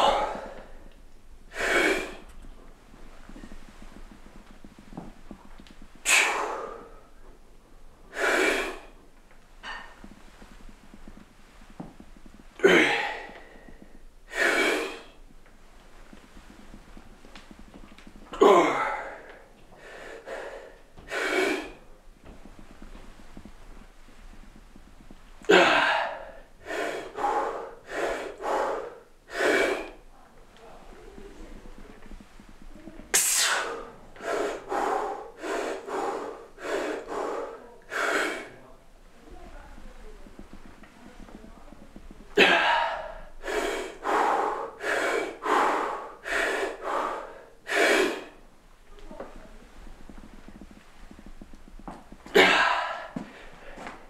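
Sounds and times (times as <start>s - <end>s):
man breathing hard: 0.0s - 2.4s, 4.7s - 7.3s, 8.1s - 9.0s, 12.6s - 15.3s, 18.3s - 23.0s, 25.4s - 30.0s, 33.1s - 38.7s, 42.3s - 48.4s, 51.8s - 54.0s.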